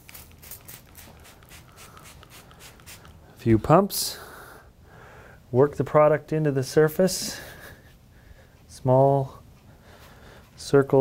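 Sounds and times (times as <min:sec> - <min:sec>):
spray bottle spritzes: 0:00.0 - 0:03.2.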